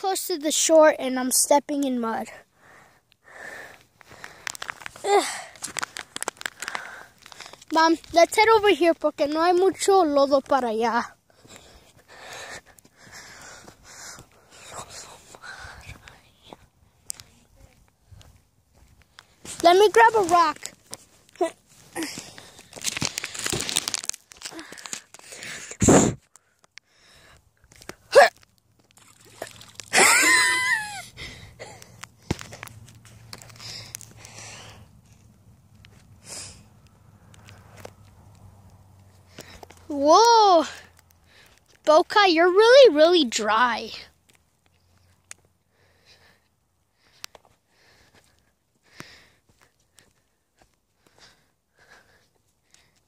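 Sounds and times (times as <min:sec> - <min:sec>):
footsteps crunching on stony soil: 0:03.8 - 0:10.6, 0:11.4 - 0:25.3
person's falling exclamation: 0:29.9 - 0:31.1.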